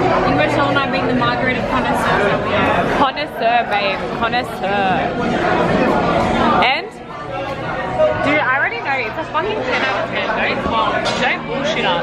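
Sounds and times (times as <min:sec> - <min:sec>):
restaurant chatter: 0:00.0 - 0:12.0.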